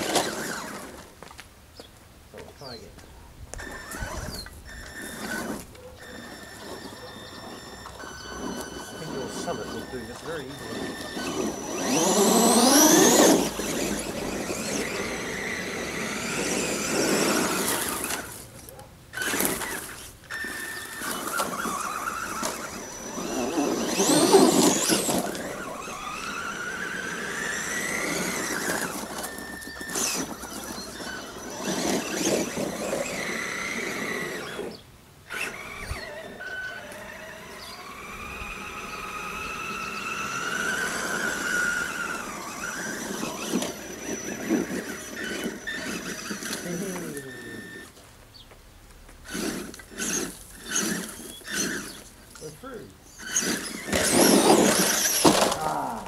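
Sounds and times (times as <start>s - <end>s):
rc truck electric motor whining: 0.0s - 1.3s, 3.5s - 48.0s, 49.2s - 56.0s.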